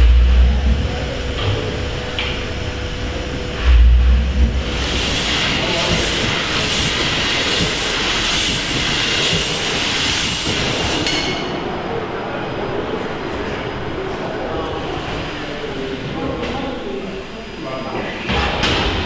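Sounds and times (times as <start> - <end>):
steam engine running: 0.0 - 11.1
steam hissing in rhythmic puffs: 0.0 - 11.4.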